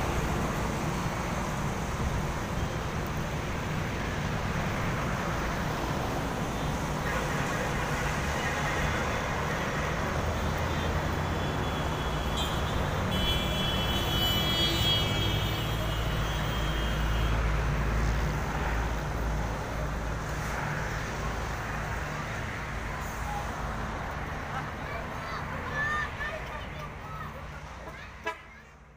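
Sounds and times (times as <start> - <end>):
road traffic rumble: 0.0 - 28.9.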